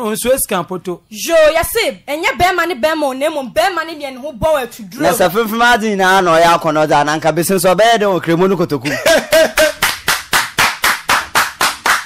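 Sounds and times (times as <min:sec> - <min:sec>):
person speaking: 0:04.0 - 0:09.3
hands clapping: 0:09.3 - 0:12.0.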